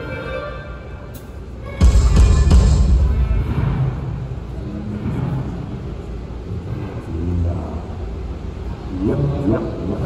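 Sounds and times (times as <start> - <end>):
low rumble of large hall: 0.0 - 10.0.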